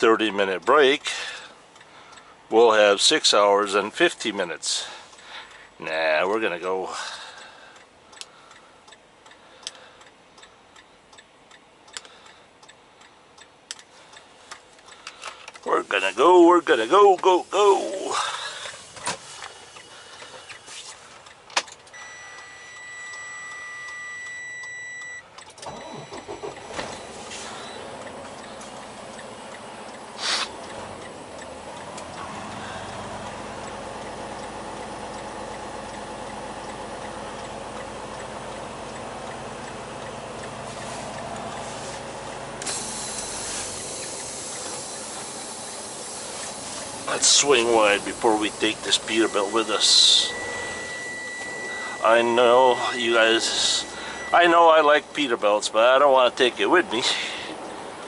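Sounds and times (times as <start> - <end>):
electronic warning tone: 22.0 - 28.0, 46.8 - 55.2
diesel truck running: 25.3 - 58.0
air hiss: 30.2 - 30.6, 40.7 - 49.1.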